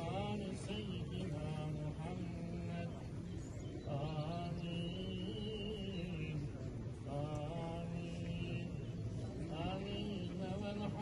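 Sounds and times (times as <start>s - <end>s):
man chanting: 0.0s - 3.1s, 3.9s - 11.0s.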